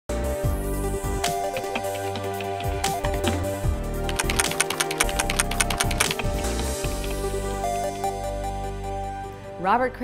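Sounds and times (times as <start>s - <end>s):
theme music: 1.1s - 9.3s
keyboard key clicks: 1.4s - 3.5s, 4.1s - 7.3s.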